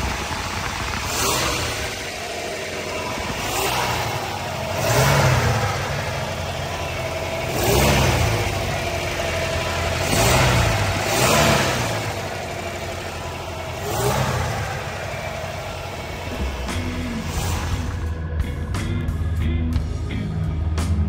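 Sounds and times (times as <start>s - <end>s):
car engine idling and revving: 0.0s - 21.0s.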